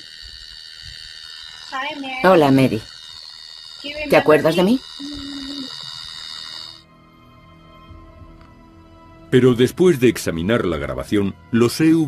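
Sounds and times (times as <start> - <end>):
recorder high-pitched whine and hiss: 0.0 - 6.9.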